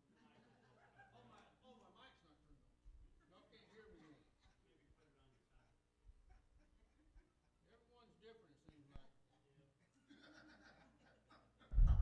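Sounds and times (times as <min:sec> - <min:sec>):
muffled thump on microphone: 0:11.8 - 0:12.0.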